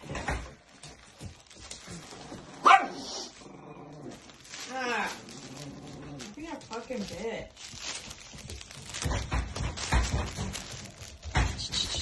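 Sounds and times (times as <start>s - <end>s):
dog growling: 2.1s - 6.4s
dog bark-like sound: 2.6s - 3.2s.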